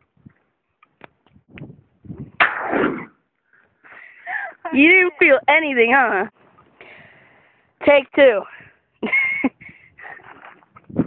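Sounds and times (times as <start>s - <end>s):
shotgun blast: 2.4s - 3.1s.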